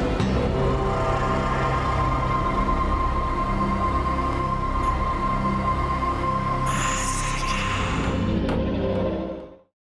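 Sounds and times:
theme music: 0.0s - 9.7s.

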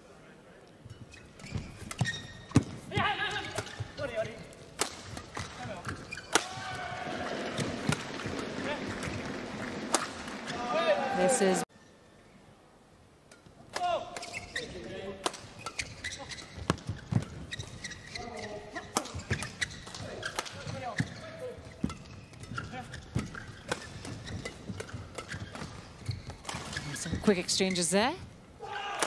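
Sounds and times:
court shoes squeaking: 0.8s - 10.8s, 13.4s - 28.3s
racket strikes on shuttlecock: 4.8s - 6.7s.

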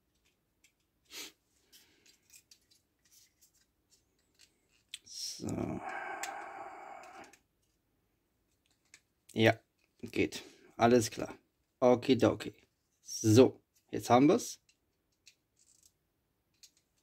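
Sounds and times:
plastic parts clicking: 0.1s - 1.0s, 1.7s - 5.1s, 8.5s - 9.1s, 14.6s - 17.0s.

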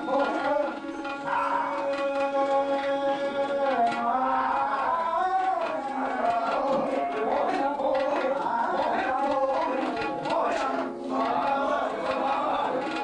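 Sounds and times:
tabla strokes: 0.0s - 13.0s.

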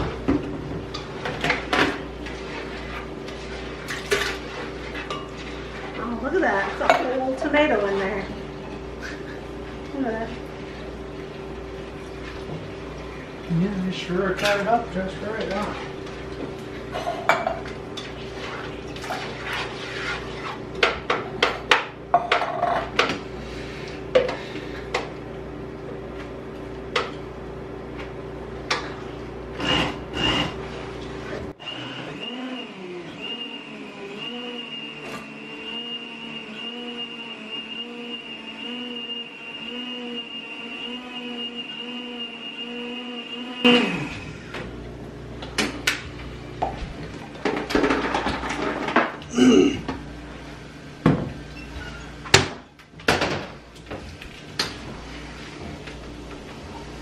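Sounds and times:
faint high whine: 31.7s - 44.5s
steady hum: 35.7s - 52.8s.

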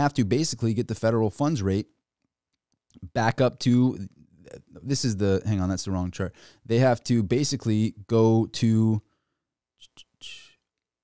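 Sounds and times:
short breath: 6.4s - 6.7s, 9.1s - 9.5s.

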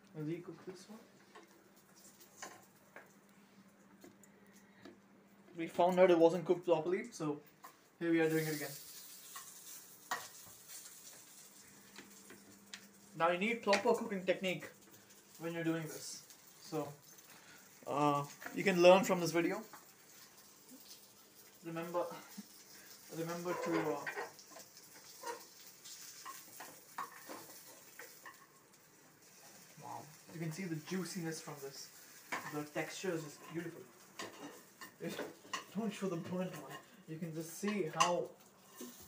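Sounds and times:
chicken sizzling in a pan: 0.7s - 3.2s, 7.7s - 39.0s.

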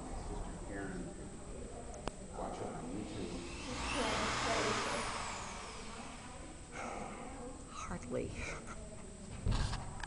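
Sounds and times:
electric drill whirring: 3.0s - 6.6s.

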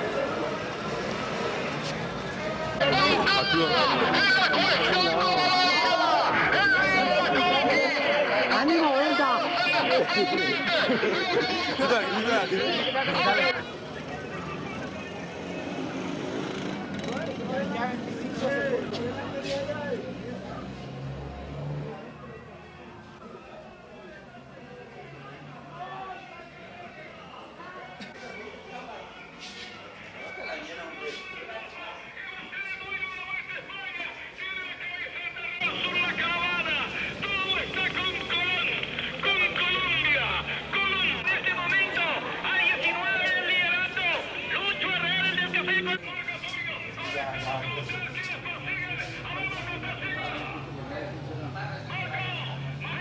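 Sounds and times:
crowd voices: 0.0s - 53.0s
vehicle engine: 0.0s - 53.0s
excited radio sports commentary: 2.7s - 15.3s, 29.9s - 53.0s.

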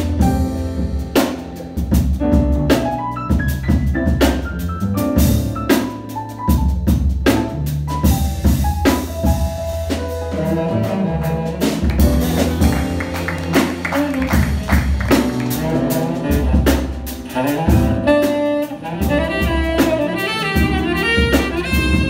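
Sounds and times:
jazz piano bass and drums: 0.0s - 22.0s.

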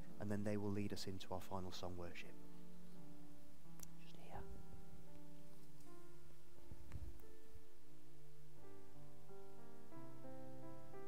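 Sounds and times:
soft keyboard chords: 0.0s - 11.0s.

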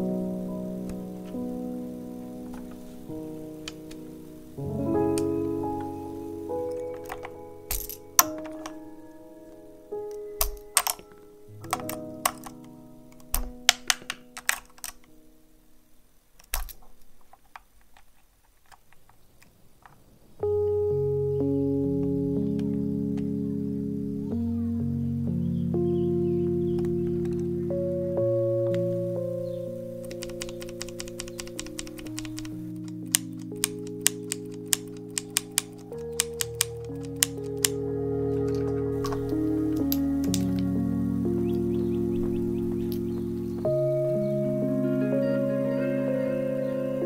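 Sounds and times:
keyboard keys clicking: 0.0s - 15.4s, 16.4s - 24.5s, 26.3s - 45.5s
soft background music: 0.0s - 17.2s, 20.4s - 47.0s
keyboard switch clacks: 6.6s - 8.9s, 10.0s - 15.2s, 30.0s - 37.8s.

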